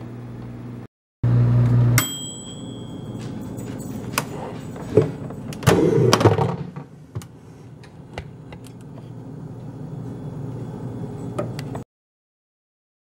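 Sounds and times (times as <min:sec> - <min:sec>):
microwave oven humming: 0:00.0 - 0:11.8
timer bell ding: 0:02.0 - 0:04.5.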